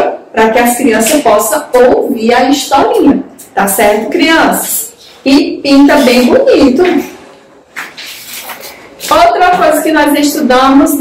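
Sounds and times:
paper pages rustling: 7.7s - 9.3s.

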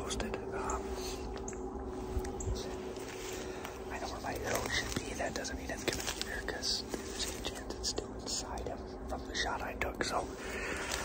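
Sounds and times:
man whispering: 0.0s - 11.0s.

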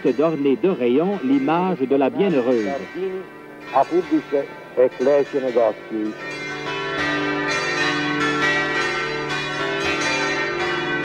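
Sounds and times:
church bells pealing: 0.0s - 11.0s.

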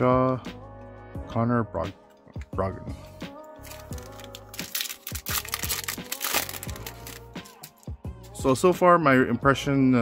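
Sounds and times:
background music: 0.0s - 10.0s
foil wrapper crinkling and tearing: 3.6s - 7.8s.

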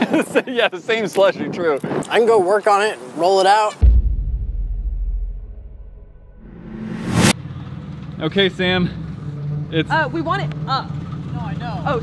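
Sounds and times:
deep boom with low rumble: 3.8s - 7.3s
rising whoosh: 3.8s - 7.4s.

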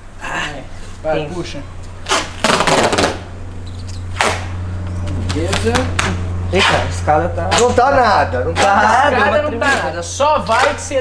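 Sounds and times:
duct tape ripping off roll: 2.0s - 4.6s.

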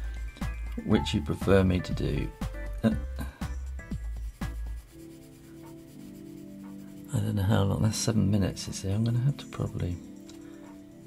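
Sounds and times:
soft background music: 0.0s - 11.0s
pencil rubbing on paper: 4.0s - 7.6s.

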